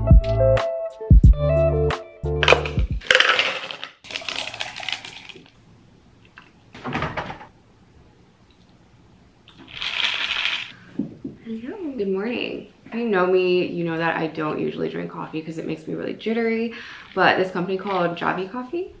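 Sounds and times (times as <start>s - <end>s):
ice cubes clattering into plastic cup: 2.4s - 5.5s, 9.7s - 10.7s
liquid pouring: 2.4s - 5.6s.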